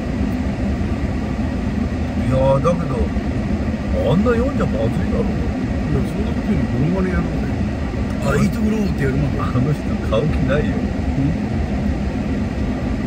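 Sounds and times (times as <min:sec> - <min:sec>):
car cabin hum: 0:00.0 - 0:13.0
man talking: 0:02.2 - 0:03.1, 0:03.9 - 0:11.4.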